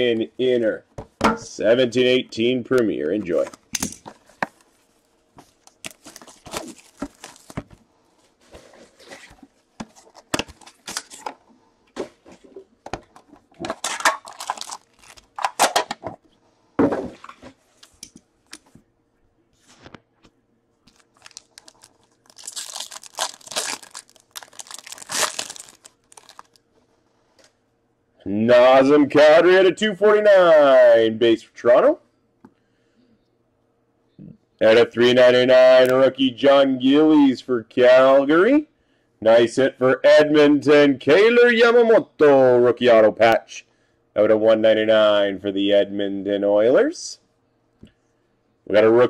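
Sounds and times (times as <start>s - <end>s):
plastic wrap tearing and crinkling: 5.6s - 7.8s, 13.6s - 15.8s, 20.9s - 26.6s.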